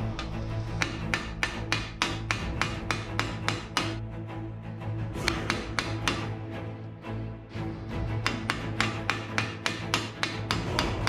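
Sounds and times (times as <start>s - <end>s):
background music: 0.0s - 11.0s
hammer striking sheet metal: 0.1s - 4.0s, 5.2s - 6.3s, 8.2s - 11.0s.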